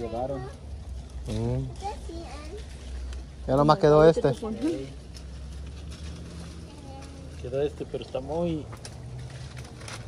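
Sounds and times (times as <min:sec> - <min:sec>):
light rustles and ticks: 0:00.0 - 0:10.0.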